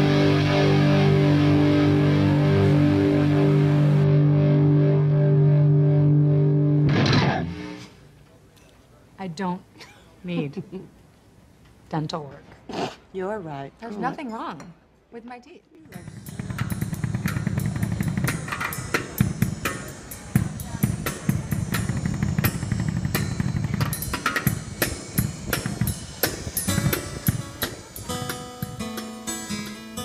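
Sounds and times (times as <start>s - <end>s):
guitar chord ringing: 0.0s - 8.1s, 16.0s - 30.0s
drum kit beat: 15.9s - 30.0s.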